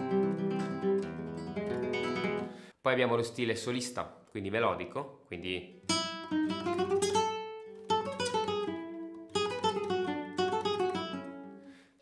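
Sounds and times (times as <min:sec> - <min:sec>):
fingerstyle guitar melody: 0:00.0 - 0:02.6, 0:05.7 - 0:11.8.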